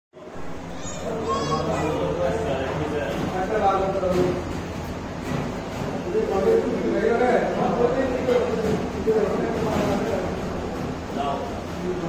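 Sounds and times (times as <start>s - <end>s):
people and children chattering: 0.2s - 5.2s.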